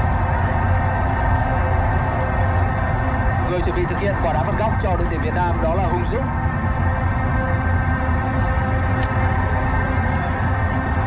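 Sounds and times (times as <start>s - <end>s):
stadium crowd drone on radio: 0.0s - 11.0s.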